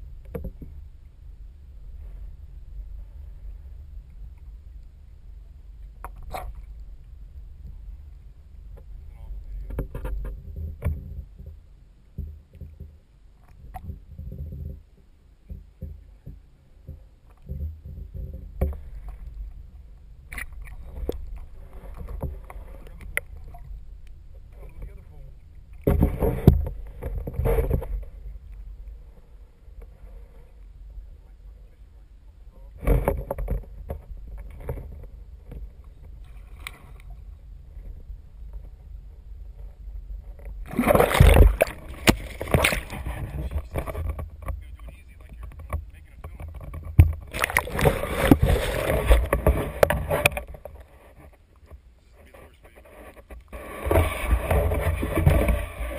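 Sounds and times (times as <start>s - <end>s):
underwater rumble against case: 1.8s - 55.9s.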